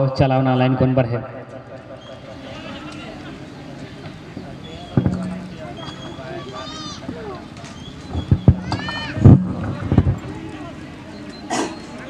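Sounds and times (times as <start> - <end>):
sharp thumps: 4.9 - 6.2, 8.1 - 10.3
people shouting high-pitched calls: 5.8 - 7.4, 8.5 - 9.2.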